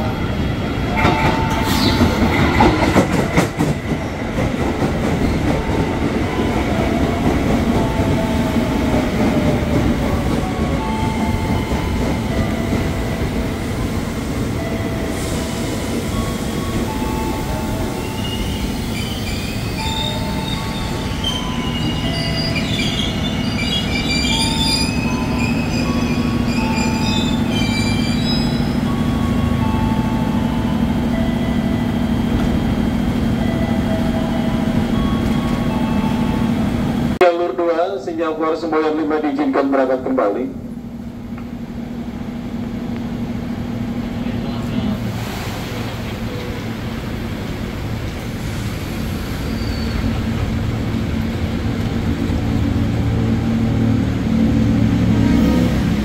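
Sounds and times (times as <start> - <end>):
train wheels rumbling on rails: 0.0 - 37.2, 40.6 - 56.0
train brake squeal: 1.0 - 3.2, 15.0 - 29.2, 48.4 - 50.4.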